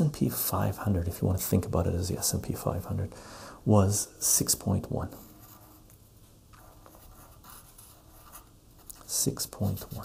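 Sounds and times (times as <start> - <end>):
pen scratching on paper: 5.1 - 6.0, 6.6 - 10.0.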